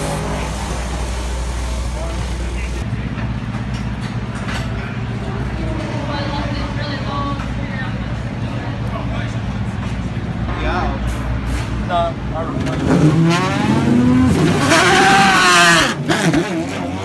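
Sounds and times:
voices: 4.2 - 12.8
car engine revving and pulling away: 11.2 - 17.0.

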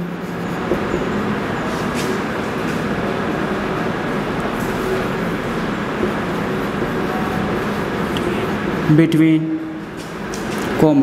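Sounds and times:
marker scratching on whiteboard: 0.0 - 9.2.

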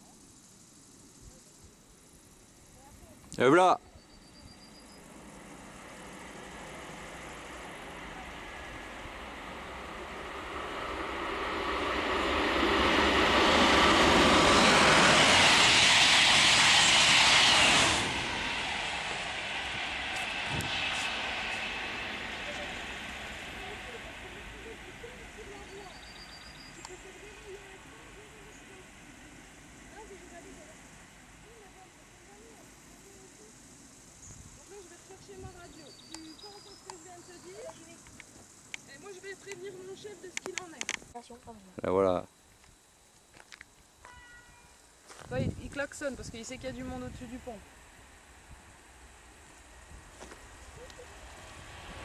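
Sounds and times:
train rushing past: 2.6 - 41.2, 43.8 - 52.0.

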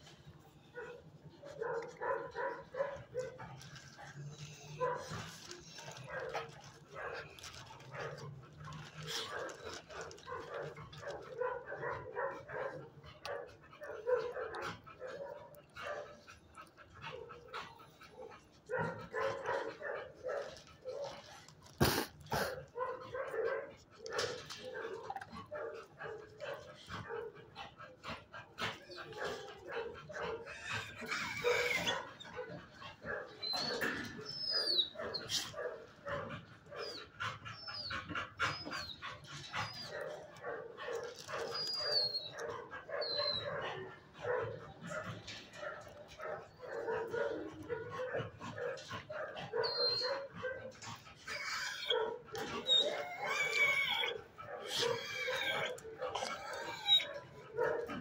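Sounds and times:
dogs barking: 0.7 - 58.0.

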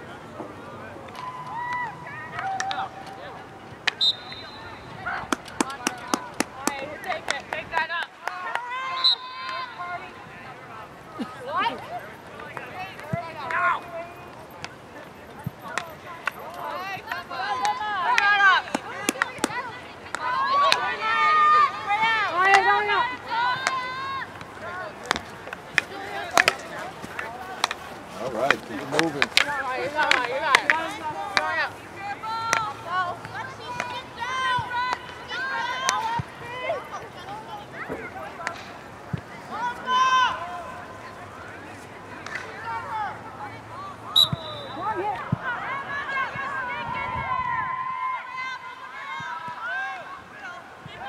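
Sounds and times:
voices calling out: 0.0 - 51.0
hockey sticks clacking: 0.4 - 4.6, 5.2 - 8.7, 11.3 - 39.9, 41.7 - 42.9
people shouting: 16.6 - 27.7, 28.7 - 36.9, 39.5 - 40.8.

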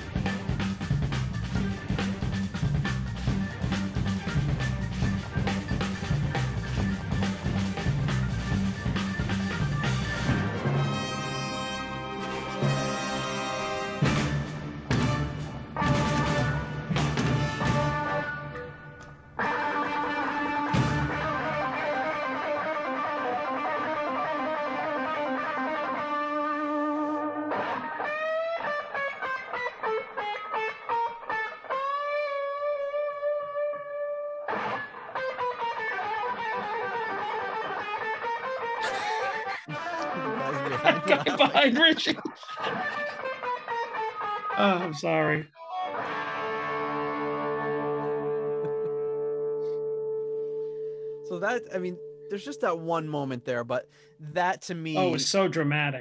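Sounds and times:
orchestra playing: 10.0 - 18.2
electric guitar solo: 15.6 - 41.8, 42.5 - 52.8, 55.0 - 55.4.

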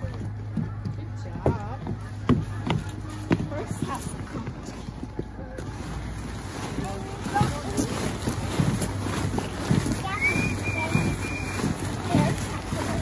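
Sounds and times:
faint voices: 0.0 - 13.0
wind buffeting microphone: 0.7 - 13.0.

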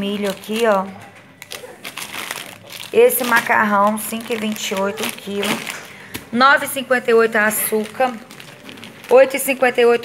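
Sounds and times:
plastic packets crinkling: 0.0 - 10.0.

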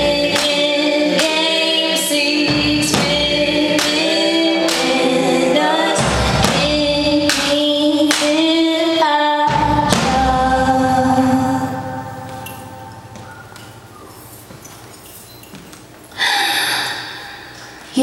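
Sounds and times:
live band music: 0.0 - 7.8
heavy drum beats: 0.0 - 8.7, 9.4 - 12.3
woman singing into microphone: 0.0 - 13.0.

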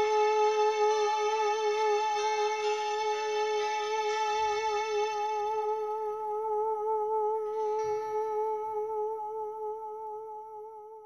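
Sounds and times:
person singing long held note: 0.0 - 11.0.

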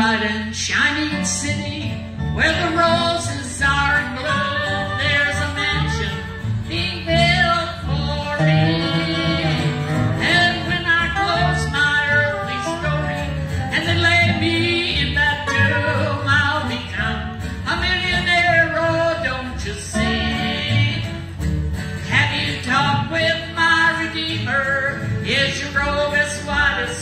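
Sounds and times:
acoustic guitar: 0.0 - 27.0
dobro: 0.0 - 27.0
upright bass: 0.0 - 27.0
singing: 3.8 - 21.2.

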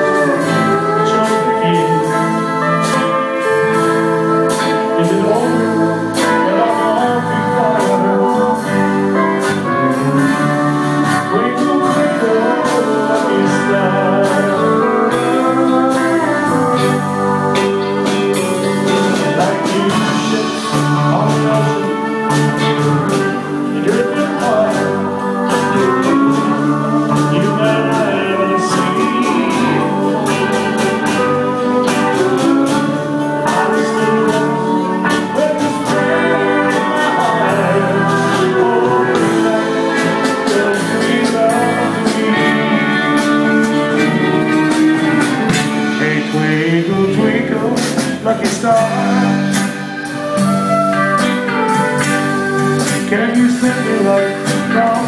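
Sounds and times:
acoustic and electric guitars: 0.0 - 55.0
bass: 0.0 - 55.0
drums: 0.0 - 55.0.

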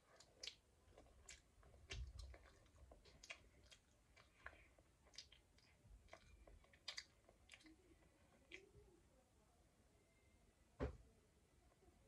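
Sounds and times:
girl chewing food: 0.0 - 9.1.

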